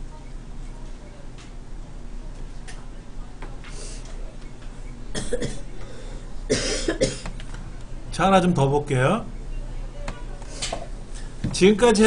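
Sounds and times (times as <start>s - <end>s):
person coughing: 5.1s - 5.7s, 6.5s - 7.3s.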